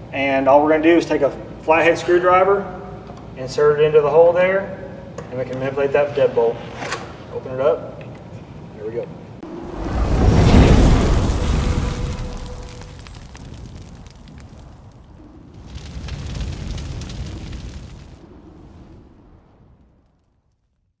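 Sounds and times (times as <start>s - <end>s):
deep boom with rushing noise: 9.4s - 20.4s.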